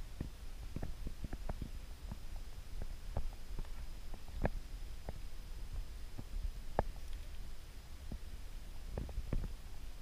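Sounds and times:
low steady microphone rumble: 0.0s - 10.0s.

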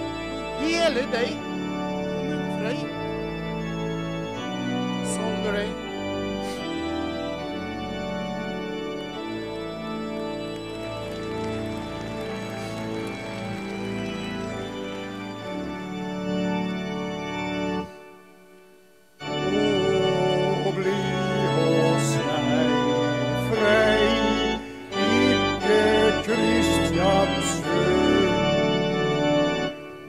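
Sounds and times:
organ chords: 0.0s - 30.0s
wavering organ melody: 0.0s - 30.0s.

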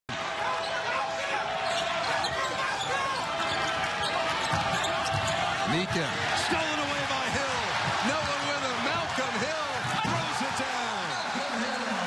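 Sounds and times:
murmur of crowd voices: 0.1s - 12.0s
shoe squeaks: 1.6s - 5.4s.

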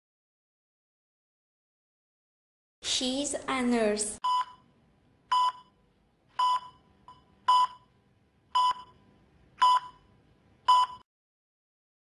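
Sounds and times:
heart monitor beeps: 4.2s - 4.6s, 5.3s - 5.8s, 6.4s - 7.9s, 8.5s - 10.1s, 10.7s - 11.0s.

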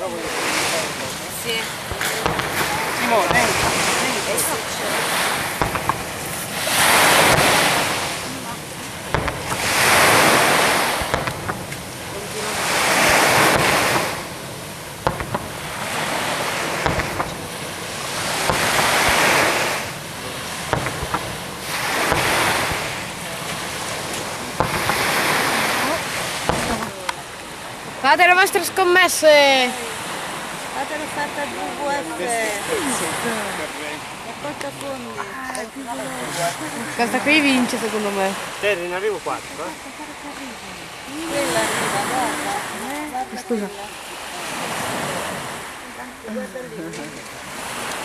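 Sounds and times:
sea waves breaking on beach: 0.0s - 48.0s.

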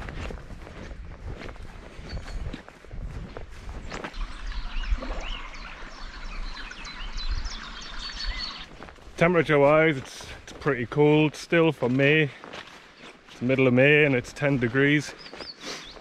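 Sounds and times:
footsteps through long grass: 0.0s - 6.3s, 8.0s - 16.0s
wind rumble on microphone: 0.0s - 8.8s
songbirds chirping and singing: 1.6s - 16.0s.

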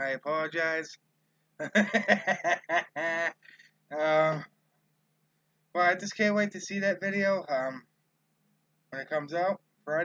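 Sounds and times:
man laughing: 1.6s - 4.4s.

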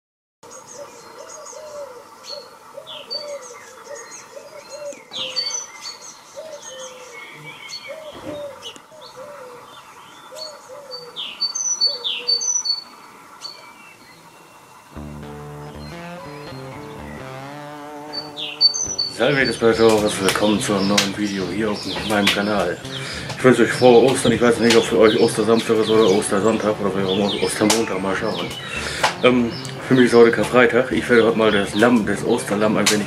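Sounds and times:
songbirds chirping and singing: 0.5s - 15.0s, 15.7s - 33.0s
music with steady low notes: 14.9s - 33.0s.

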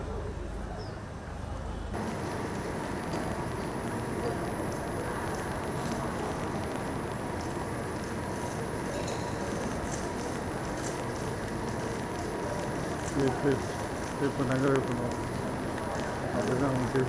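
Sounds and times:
indoor rumble and hiss: 0.0s - 17.0s.

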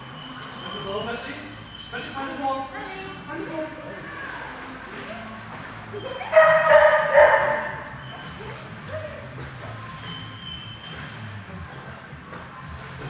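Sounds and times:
dog barking: 6.2s - 7.9s.

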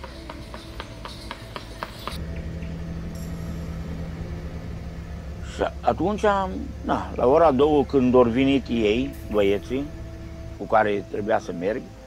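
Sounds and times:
horse hooves clopping on asphalt: 0.0s - 3.1s
vehicle engine droning: 0.0s - 12.0s.

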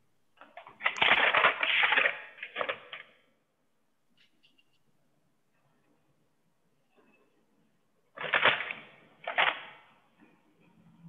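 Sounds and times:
crackling rustling noise: 0.4s - 3.3s, 8.1s - 10.4s.

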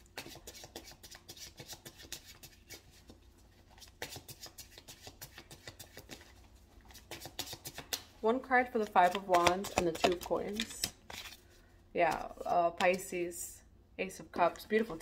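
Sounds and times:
cards being shuffled: 0.2s - 8.1s, 8.7s - 13.0s.

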